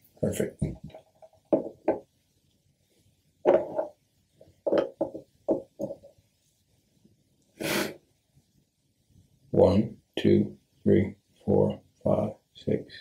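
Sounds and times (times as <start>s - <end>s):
sharp breath in: 7.6s - 8.0s.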